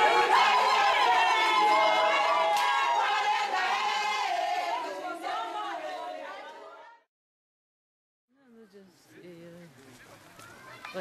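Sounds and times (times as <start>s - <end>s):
crowd chattering: 9.1s - 11.0s.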